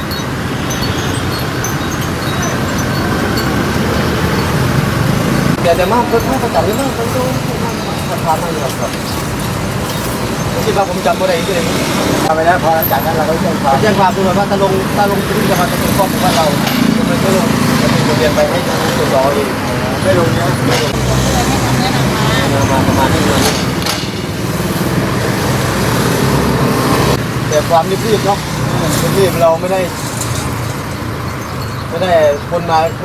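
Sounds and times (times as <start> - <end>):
road traffic noise: 0.0 - 33.0
person talking: 5.5 - 9.2, 10.5 - 23.8.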